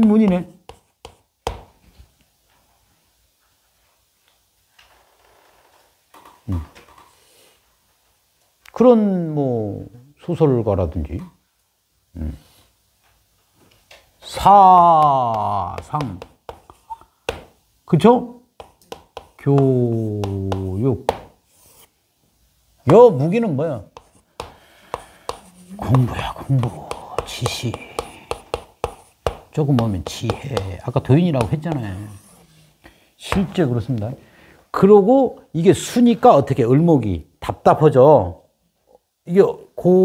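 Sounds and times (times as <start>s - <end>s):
chalk tapping on a blackboard: 0.0s - 1.8s, 14.8s - 17.6s, 18.6s - 21.9s, 23.8s - 32.4s.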